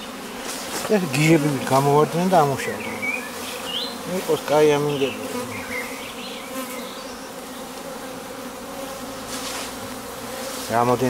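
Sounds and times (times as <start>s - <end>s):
bees buzzing: 0.0s - 11.0s.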